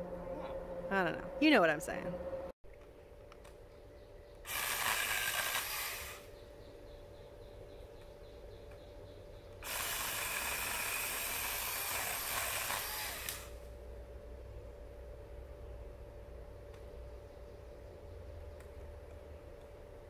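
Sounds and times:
chainsaw cutting branches: 4.5 - 6.3, 9.6 - 13.6.

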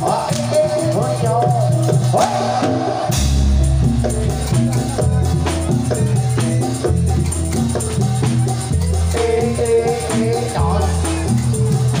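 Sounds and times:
drums: 0.0 - 12.0
pitched percussion melody: 0.0 - 12.0
deep low tone: 3.1 - 7.4.

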